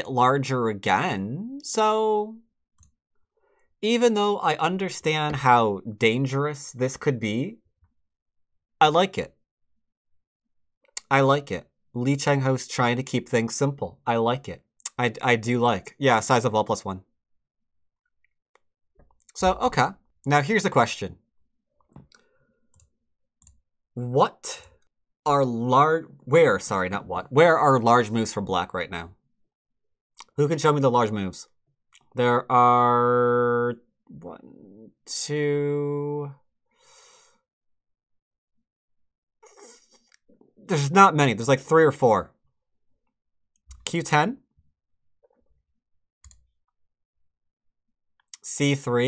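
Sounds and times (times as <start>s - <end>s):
computer mouse clicks: 46.2s - 46.4s.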